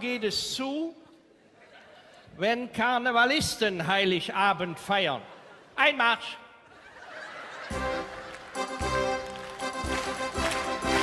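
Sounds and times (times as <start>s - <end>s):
electronic keyboard playing march: 7.7s - 11.0s.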